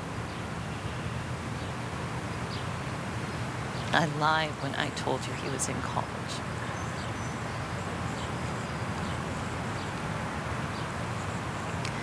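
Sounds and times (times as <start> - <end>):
low outdoor rumble and hiss: 0.0 - 12.0.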